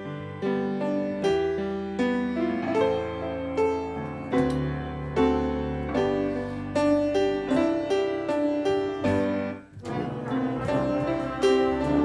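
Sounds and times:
piano sustained notes: 0.0s - 12.0s.

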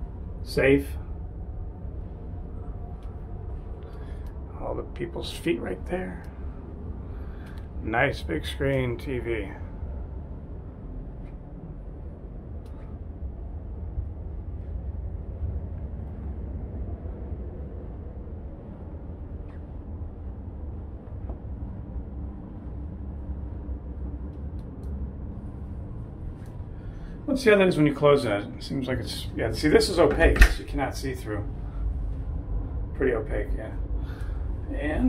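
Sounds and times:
air conditioning rumble: 0.0s - 35.0s
faint clicks: 7.3s - 7.7s, 24.2s - 25.7s.

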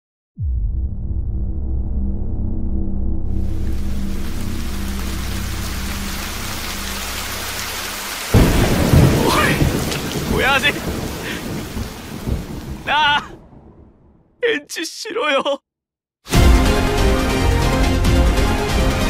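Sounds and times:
low droning tone: 0.4s - 7.6s
heavy rain hissing: 3.4s - 13.3s
thunderclap rumbling: 8.3s - 14.4s.

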